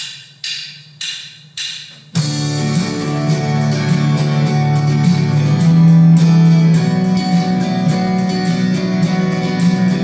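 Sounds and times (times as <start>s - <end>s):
drumsticks clicking together: 0.0s - 2.0s.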